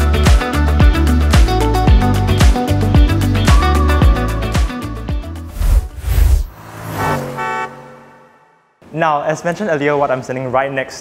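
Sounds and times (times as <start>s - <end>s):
held horn-like note: 6.8s - 8.7s.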